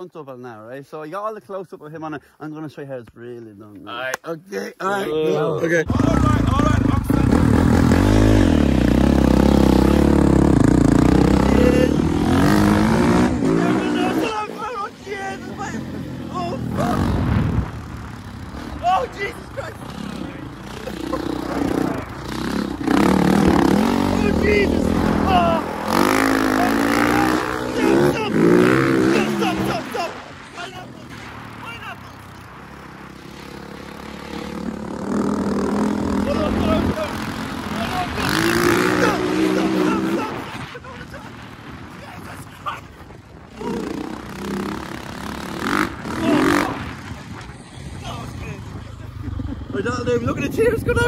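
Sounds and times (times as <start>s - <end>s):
dirt bike engine revving: 5.8s - 41.9s, 43.4s - 50.1s
wind rushing over microphone: 7.0s - 51.0s
rider yelling: 11.2s - 17.3s, 18.6s - 22.2s, 22.8s - 32.3s, 35.9s - 41.1s, 45.7s - 46.9s.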